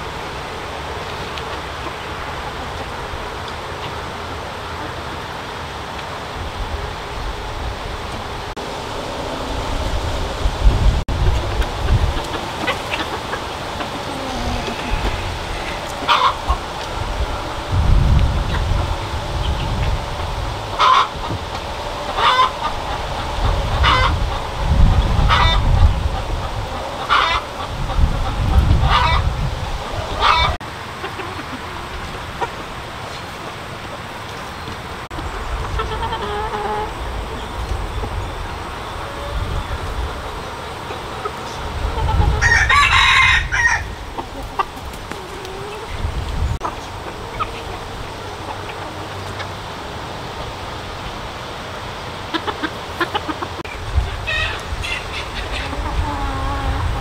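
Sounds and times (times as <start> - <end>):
chickens calling: 0.0 - 57.0
low rumble: 7.4 - 12.7.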